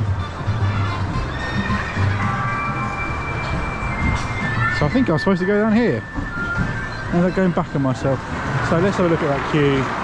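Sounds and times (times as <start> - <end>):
music over loudspeakers: 0.0 - 8.2
outdoor park ambience: 0.0 - 10.0.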